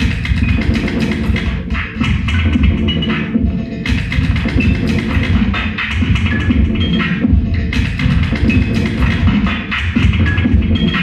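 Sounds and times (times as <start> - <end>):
looped turntable record texture: 0.0 - 11.0.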